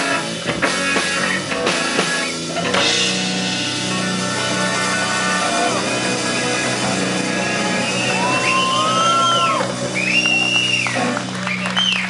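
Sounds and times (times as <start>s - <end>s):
bending electric guitar lead notes: 0.0s - 12.0s
held low guitar chord: 2.6s - 11.4s.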